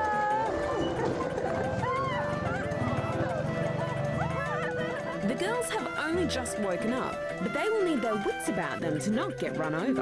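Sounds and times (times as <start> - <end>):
voices calling out: 0.0 - 6.2
background music: 0.0 - 10.0.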